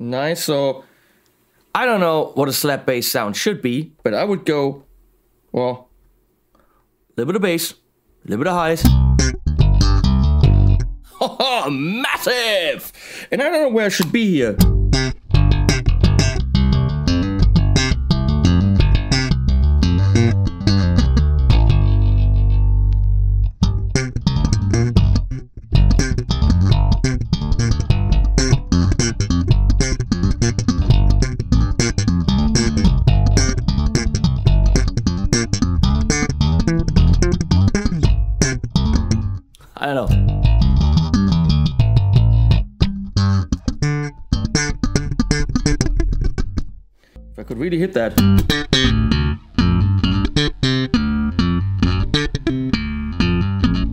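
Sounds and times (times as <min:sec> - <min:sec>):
slap bass guitar: 0:08.6 - 0:11.1, 0:14.0 - 0:53.9.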